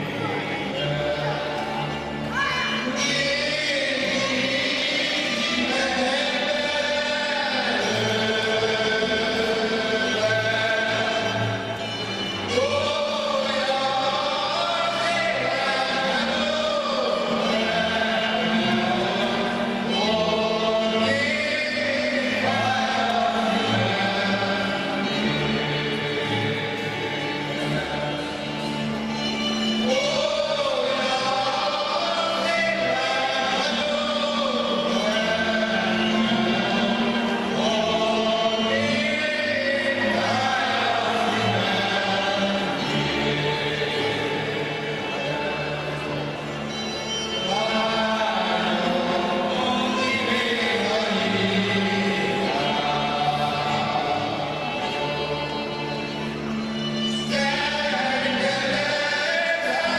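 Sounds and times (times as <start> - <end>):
folk band with fiddles and bass: 0.0 - 59.9
person singing: 0.0 - 59.9.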